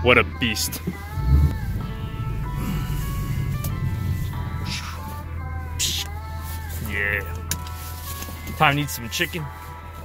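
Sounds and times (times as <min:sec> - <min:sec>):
car engine rumble: 0:00.0 - 0:10.0
music with held notes: 0:00.4 - 0:10.0.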